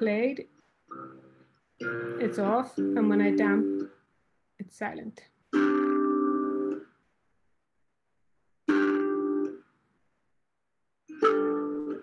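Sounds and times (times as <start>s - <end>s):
harp chords plucked: 11.1s - 12.0s.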